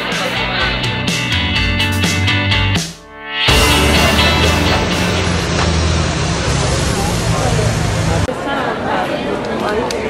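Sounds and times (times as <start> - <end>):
background music: 0.0 - 6.8
low engine drone: 3.5 - 8.3
street noise: 3.5 - 10.0
voices: 3.5 - 10.0.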